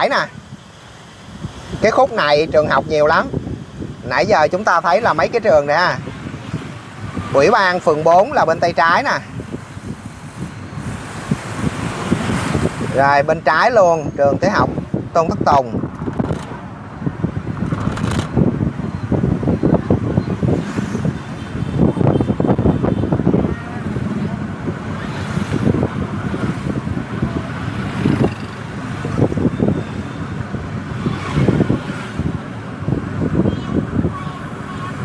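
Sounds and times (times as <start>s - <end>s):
motorbike and car engines: 0.0s - 35.0s
wind buffeting microphone: 0.0s - 35.0s.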